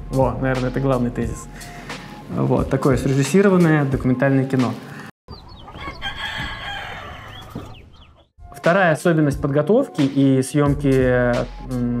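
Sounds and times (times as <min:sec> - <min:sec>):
chicken clucking: 0:05.3 - 0:08.3
rooster crowing: 0:05.7 - 0:07.8.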